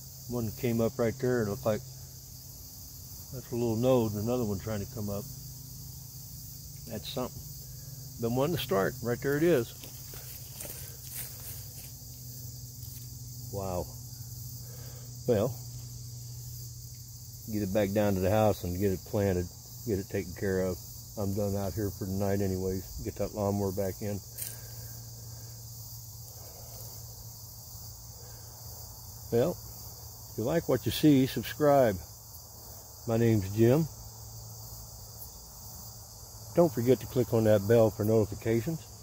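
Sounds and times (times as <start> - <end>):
low steady hum: 0.0 - 30.8
crickets chirring: 0.0 - 39.0
faint rustle: 9.2 - 13.4.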